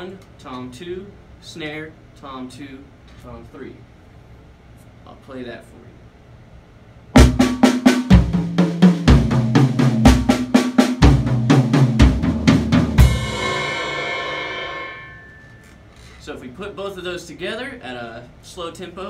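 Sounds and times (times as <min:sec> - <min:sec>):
bass drum thump: 0:07.2 - 0:10.4
snare and tom strokes: 0:07.2 - 0:15.6
cymbal hit ringing: 0:13.0 - 0:15.9.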